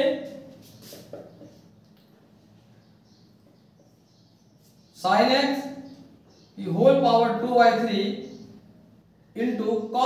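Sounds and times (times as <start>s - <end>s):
marker strokes on whiteboard: 0.2s - 1.7s.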